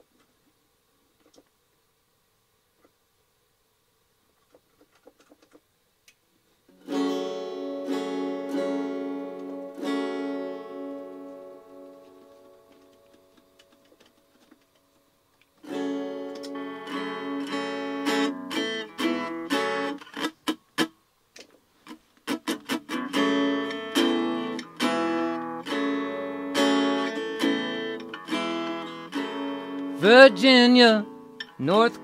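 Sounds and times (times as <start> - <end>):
acoustic guitar strumming chords: 6.7 - 13.8, 15.6 - 21.0, 22.3 - 32.0.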